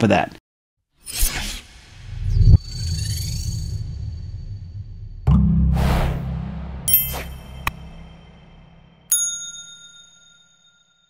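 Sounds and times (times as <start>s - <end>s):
bright bell ding: 6.6s - 8.2s, 9.1s - 11.0s.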